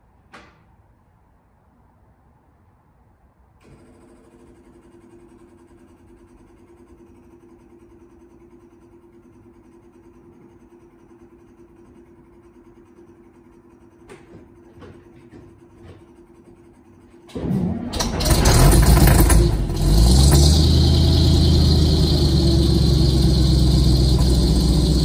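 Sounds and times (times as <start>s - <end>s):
electric fuel pumps running: 17.3s - 25.0s.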